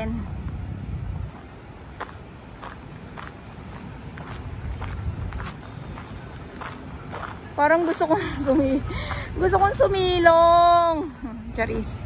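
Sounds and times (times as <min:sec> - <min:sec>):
low steady rumble: 0:00.0 - 0:12.0
footsteps on sand: 0:01.3 - 0:09.4.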